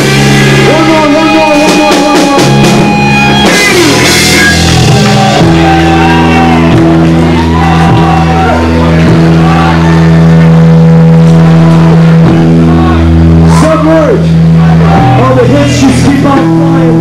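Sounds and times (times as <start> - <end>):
punk rock band playing live: 0.0 - 17.0.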